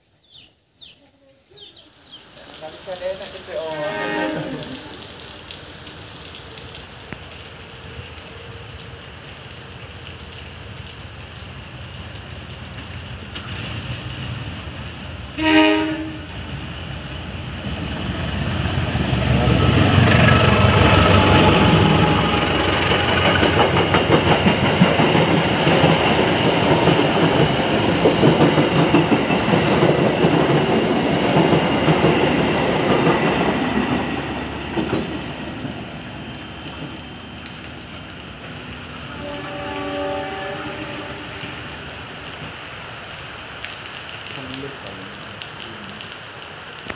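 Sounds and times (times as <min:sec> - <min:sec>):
faint train horn: 0:03.6 - 0:05.0, 0:15.3 - 0:16.4, 0:39.0 - 0:41.6
diesel locomotive rumble: 0:12.7 - 0:41.4
train wheels clattering over rail joints: 0:22.6 - 0:33.3.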